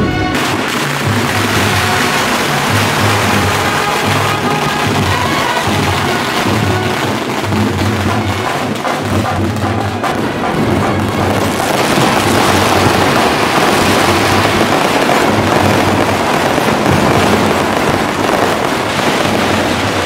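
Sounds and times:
fireworks crackling and hissing: 0.0s - 20.0s.

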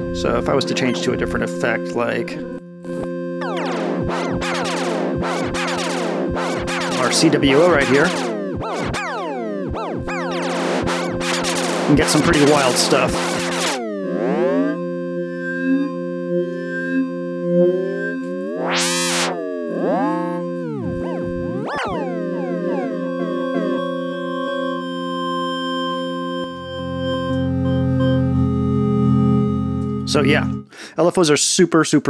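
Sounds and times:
synthesizer chord with pitch sweeps: 0.0s - 30.7s.

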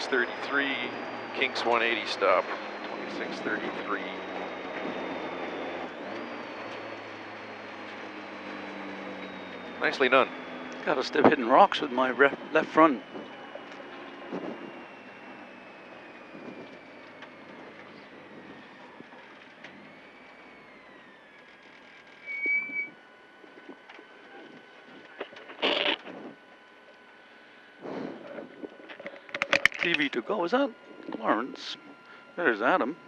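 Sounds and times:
faint car engine from inside cabin: 0.0s - 33.0s.

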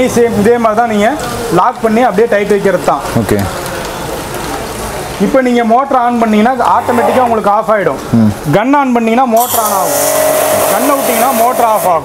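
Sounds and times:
pressure washer spraying water: 9.4s - 12.0s.

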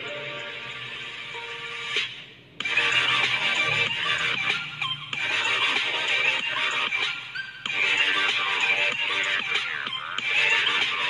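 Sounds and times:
intro music with steady beat: 0.0s - 11.0s.

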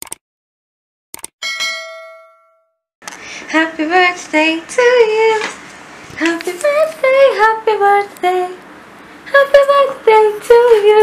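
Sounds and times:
bright bell ding: 1.4s - 2.8s.

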